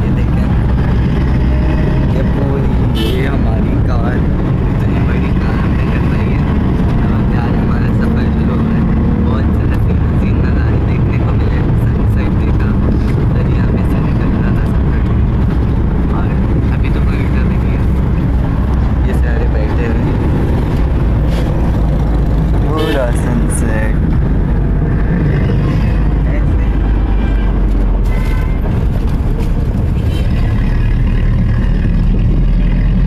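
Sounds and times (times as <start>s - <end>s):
bus engine and road rumble: 0.0s - 33.0s.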